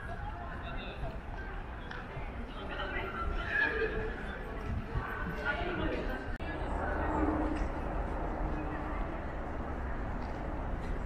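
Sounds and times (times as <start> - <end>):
people talking: 0.0 - 10.5.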